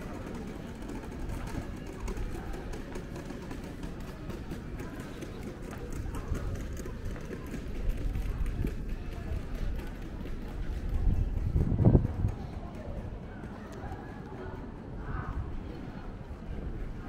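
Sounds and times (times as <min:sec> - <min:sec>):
voices of passers-by: 0:00.0 - 0:17.0.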